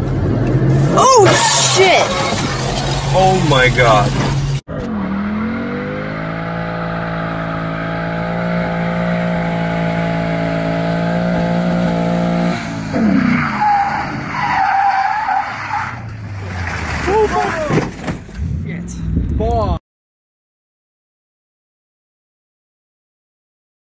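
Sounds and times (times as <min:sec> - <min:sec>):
tyres squealing: 0:01.0 - 0:04.5, 0:13.3 - 0:18.1
voices: 0:17.0 - 0:17.9.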